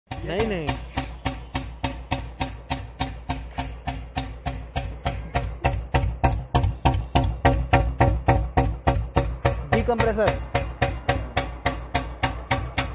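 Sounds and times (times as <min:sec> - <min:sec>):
motorcycle engine idling: 0:00.1 - 0:12.9.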